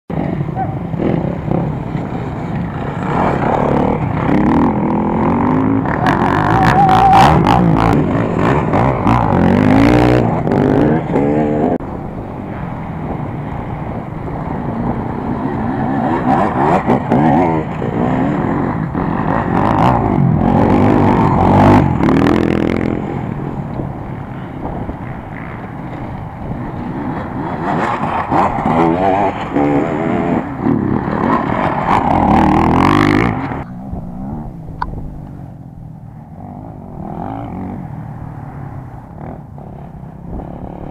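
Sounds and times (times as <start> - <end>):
dirt bike engines revving: 0.1 - 40.9.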